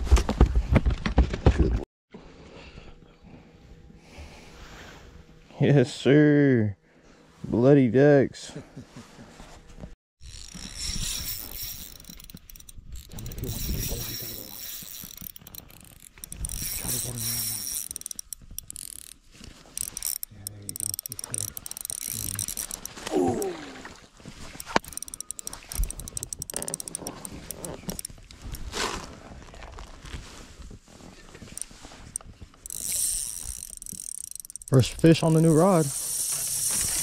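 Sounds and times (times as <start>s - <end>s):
fishing reel whirring and clicking: 10.2s - 23.2s, 24.4s - 28.6s, 31.5s - 37.0s.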